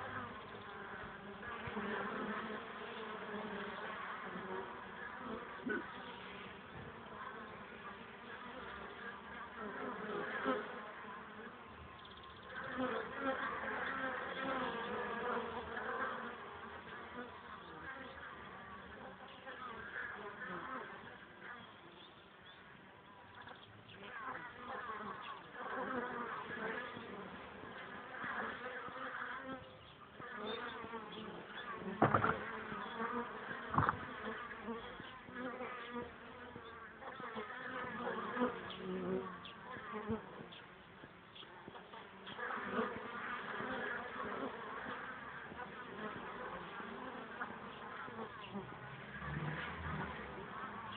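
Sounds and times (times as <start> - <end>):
honeybees buzzing: 0.0 - 50.9
short sharp knocks: 32.0 - 32.4, 33.7 - 34.1.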